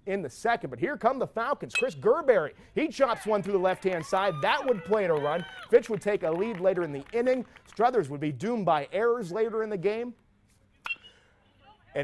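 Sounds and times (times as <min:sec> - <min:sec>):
metal bat pinging a ball: 0:01.7 - 0:02.0, 0:10.8 - 0:11.1.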